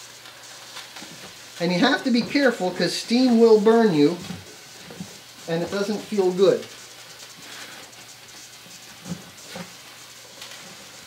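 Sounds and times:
steam hissing: 0.0 - 11.0.

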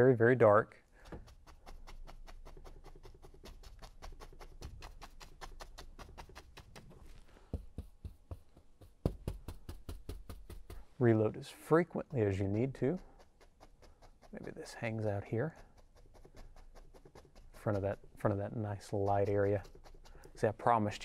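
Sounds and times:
brush tapping on canvas: 1.0 - 11.0, 11.6 - 21.0.

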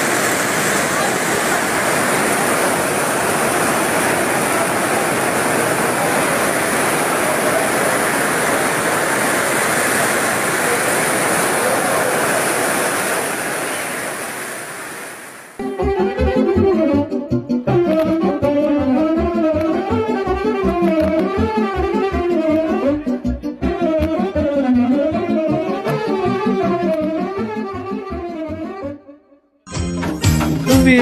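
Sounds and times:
heavy rain on a tent: 0.0 - 15.6
saxophone playing: 15.6 - 29.4.

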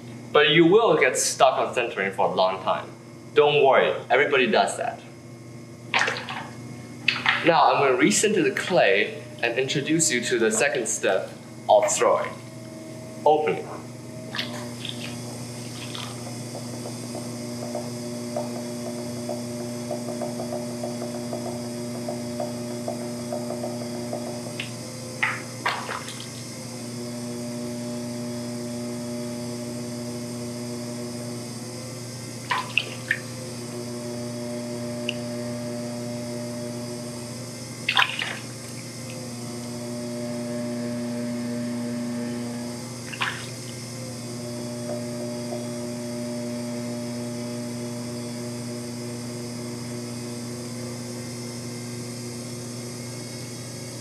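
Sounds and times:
pottery wheel motor hum: 0.0 - 54.0
wet clay slaps and splashes: 14.3 - 16.2, 25.2 - 26.4, 32.5 - 33.2, 37.9 - 38.8, 43.1 - 43.5.

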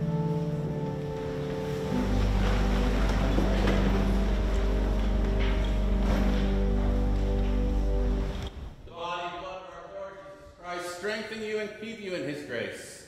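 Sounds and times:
church organ chords: 0.0 - 8.4.

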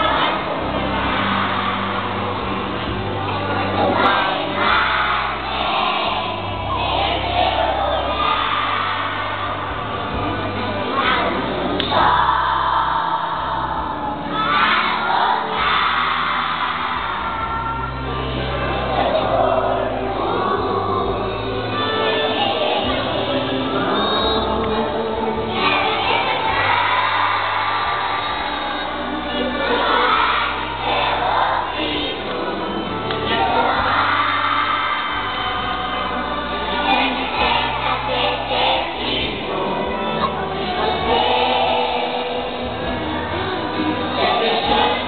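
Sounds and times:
children singing together: 0.0 - 45.0
musical accompaniment with bass: 0.0 - 45.0.

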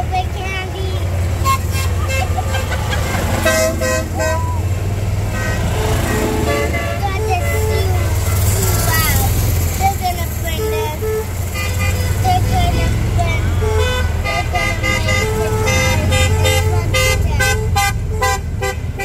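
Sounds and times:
people calling out: 0.0 - 18.5
golf cart horns beeping: 0.0 - 19.0
low rumble of moving carts: 0.0 - 19.0.

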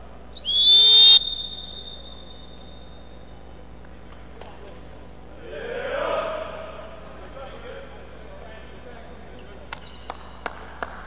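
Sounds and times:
referee's whistle blast: 0.4 - 3.2.

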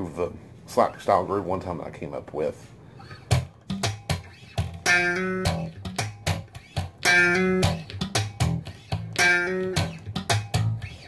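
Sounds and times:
slap bass groove: 3.2 - 11.0.

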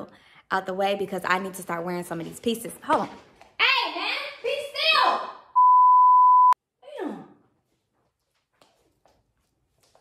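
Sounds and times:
woman speaking: 0.0 - 5.4
censor bleep: 5.6 - 6.6.

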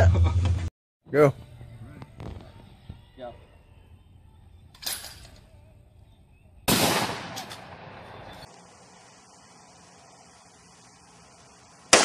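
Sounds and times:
gunshots: 6.7 - 8.4.

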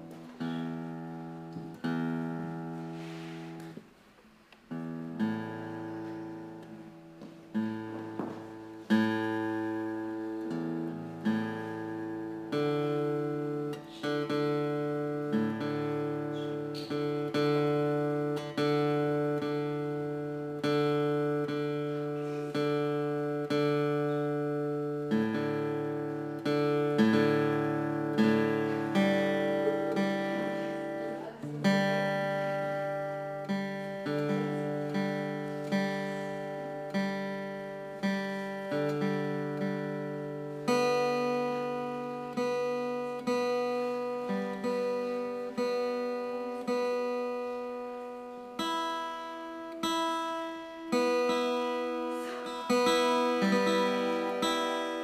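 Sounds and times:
acoustic guitar strumming chords: 0.0 - 55.0.

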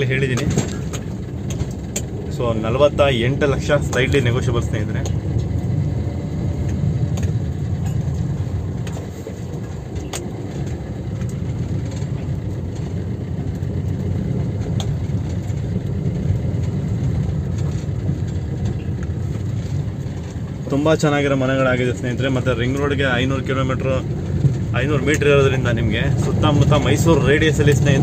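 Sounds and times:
car engine and road rumble: 0.0 - 28.0.

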